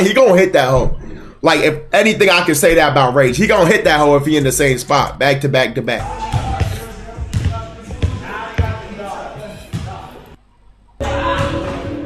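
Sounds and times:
basketball bouncing on court: 0:06.0 - 0:10.4
faint voices: 0:06.0 - 0:10.4.

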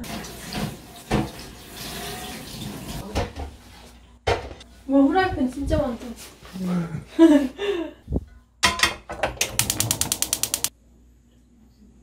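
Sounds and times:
dishes knocking: 0:08.6 - 0:10.7.

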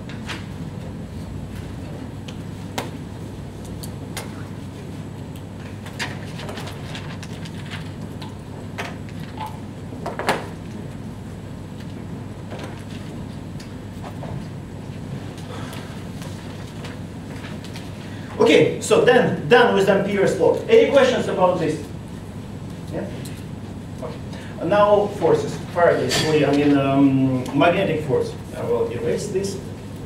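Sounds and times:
low room hum: 0:00.0 - 0:30.0.

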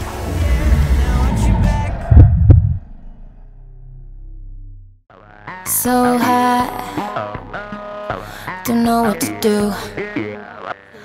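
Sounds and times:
low hum: 0:00.0 - 0:05.0
deep bass thuds: 0:00.4 - 0:05.0.

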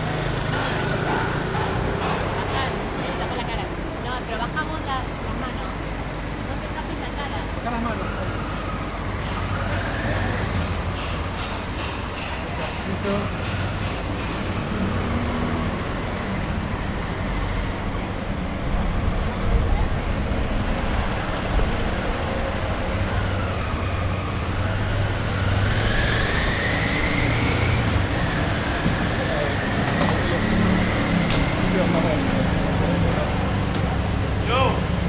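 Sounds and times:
passers-by voices: 0:00.0 - 0:25.5, 0:27.8 - 0:35.0
street traffic engines: 0:00.0 - 0:35.0.

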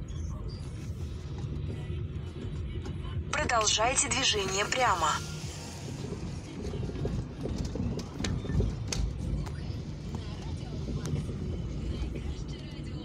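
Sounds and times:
low road rumble: 0:00.0 - 0:13.0.

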